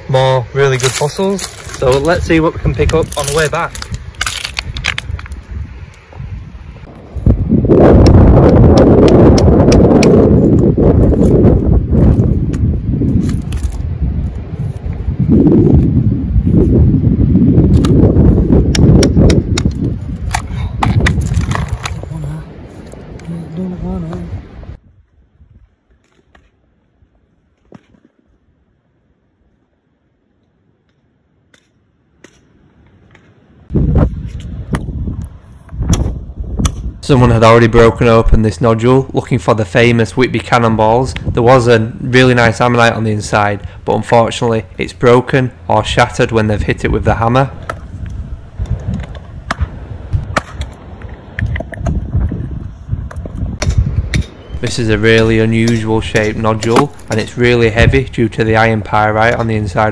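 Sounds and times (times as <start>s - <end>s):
person's voice: 0.0s - 3.8s, 22.0s - 22.6s, 23.2s - 24.4s, 54.6s - 59.9s
wind noise on microphone: 0.0s - 27.3s, 33.5s - 59.9s
beach stones knocking together: 0.7s - 5.4s, 19.0s - 22.0s.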